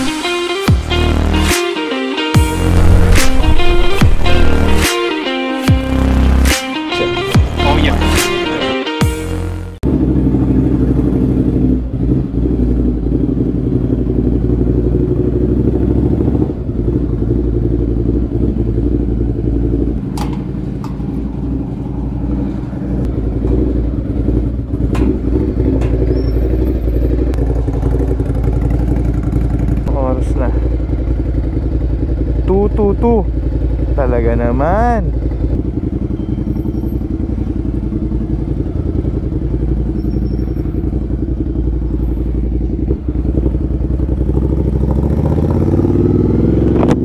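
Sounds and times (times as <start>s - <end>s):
motorcycle engine idling: 9.8s - 47.0s
metal gate clanking: 20.0s - 21.2s, 24.8s - 27.0s.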